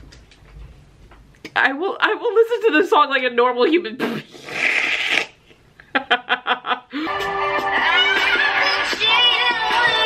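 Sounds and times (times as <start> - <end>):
woman laughing: 5.8 - 7.2.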